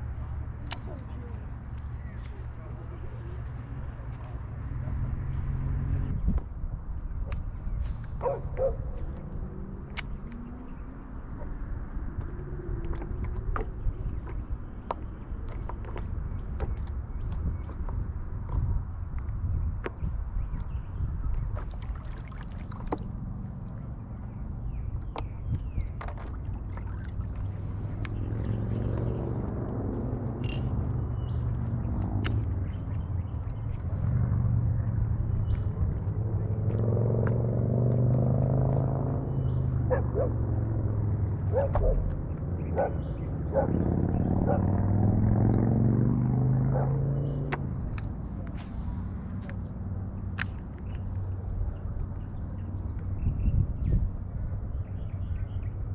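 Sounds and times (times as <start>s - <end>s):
wind noise on microphone: 5.5s - 10.5s, 11.6s - 29.6s, 50.6s - 55.9s
water lapping against board: 12.3s - 20.7s, 21.3s - 29.3s.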